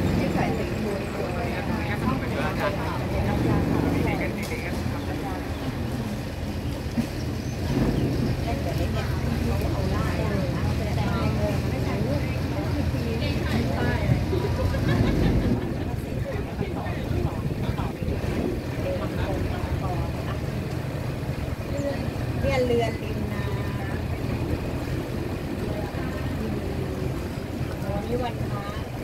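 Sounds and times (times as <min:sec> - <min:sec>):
boat engine running: 0:00.0 - 0:29.0
indistinct voices: 0:00.0 - 0:29.0.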